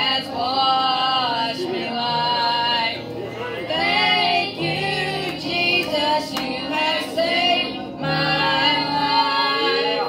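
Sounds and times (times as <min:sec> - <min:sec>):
children singing through loudspeaker: 0:00.0 - 0:10.0.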